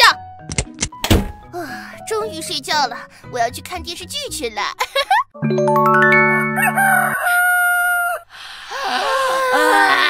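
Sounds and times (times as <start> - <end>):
chime-like jingle: 5.4 - 7.2
rooster crowing: 6.6 - 8.2.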